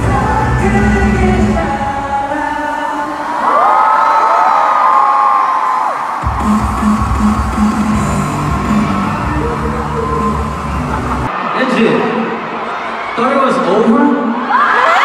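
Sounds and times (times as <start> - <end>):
pop singing over backing track: 0.0 - 3.8
crowd whooping: 3.2 - 13.4.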